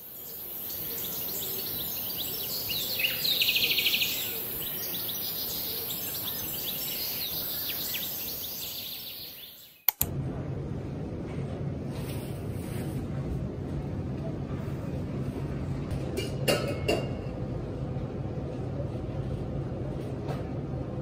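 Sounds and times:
birds chirping and twittering: 0:00.0 - 0:09.9
steady outdoor hiss: 0:00.0 - 0:11.1.

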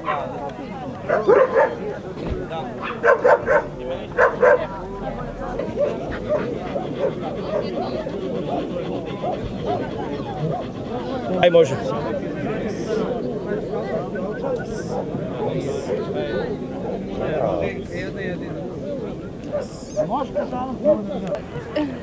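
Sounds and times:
dog barking: 0:00.0 - 0:00.3, 0:01.1 - 0:01.9, 0:02.8 - 0:04.7
crowd chatter: 0:00.0 - 0:22.0.

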